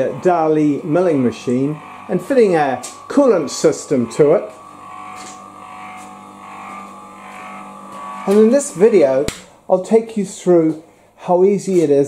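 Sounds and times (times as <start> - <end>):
electric motor humming: 0.0 - 10.9.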